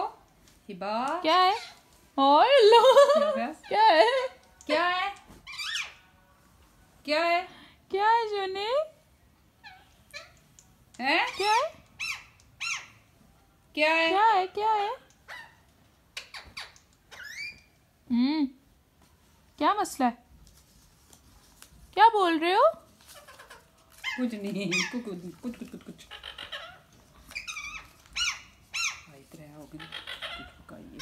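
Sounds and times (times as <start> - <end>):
parrot calls: 1.4 - 1.8, 5.4 - 6.1, 9.6 - 10.4, 11.1 - 13.1, 15.2 - 17.7, 23.0 - 29.1, 29.7 - 31.0.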